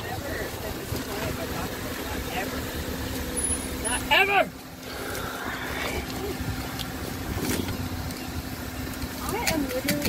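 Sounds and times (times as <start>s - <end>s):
car engine low hum: 0.0s - 10.0s.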